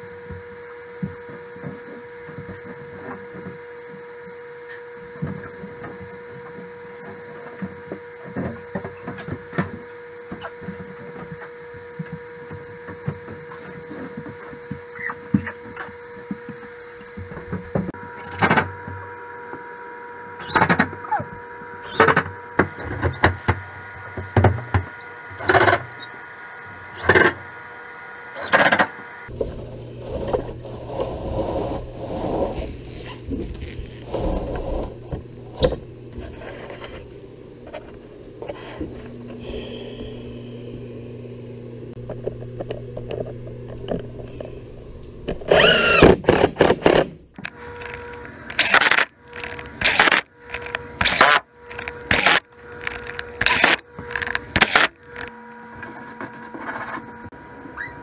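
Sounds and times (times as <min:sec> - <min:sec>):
background hum: 0:00.0 - 0:58.0
cordless drill driving screws: 0:45.5 - 0:47.0, 0:47.8 - 0:55.3.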